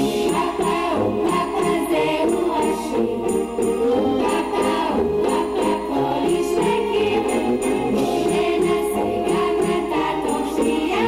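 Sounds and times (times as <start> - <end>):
children singing: 0.0 - 11.0
instrumental accompaniment: 0.0 - 11.0.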